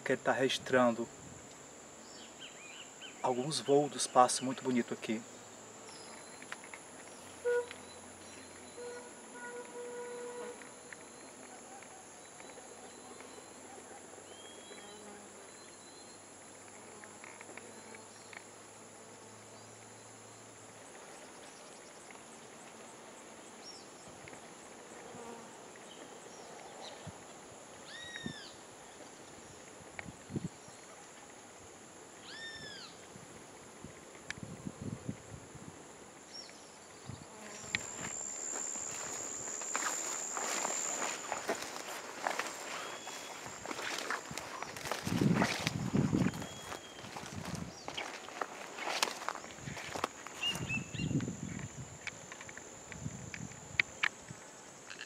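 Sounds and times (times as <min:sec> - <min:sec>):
insects droning: 0:00.0 - 0:55.0
footsteps through brush: 0:37.6 - 0:51.1
bird calls: 0:40.5 - 0:45.6.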